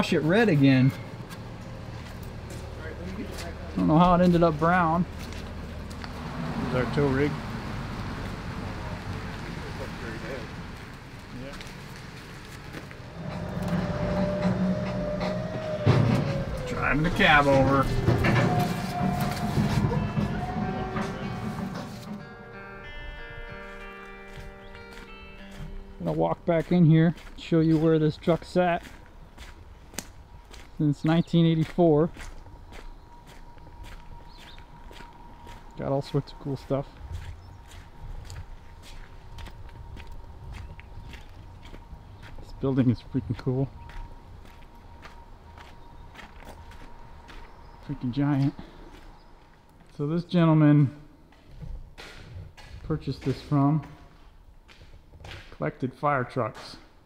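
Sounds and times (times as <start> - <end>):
footsteps crunching on gravel: 0.0 - 7.3, 8.0 - 22.1, 23.6 - 50.4, 51.3 - 55.6
vehicle engine running: 0.0 - 22.3.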